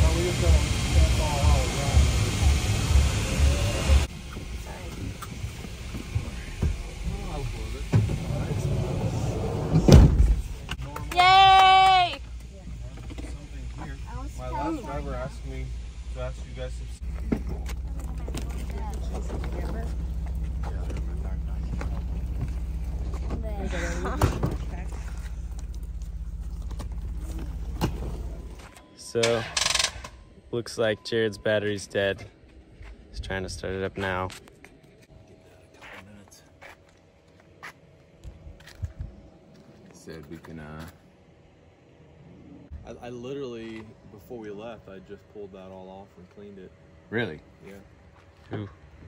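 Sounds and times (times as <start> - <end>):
vehicle engine idling: 0.0 - 28.8, 29.6 - 49.0
voices: 0.0 - 29.6
luggage being loaded into van: 8.0 - 10.7
heavy thud: 9.7 - 10.7.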